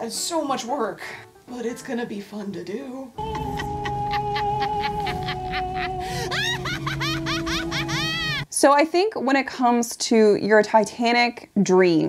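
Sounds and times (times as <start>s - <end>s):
cartoon character laughing: 3.2s - 8.4s.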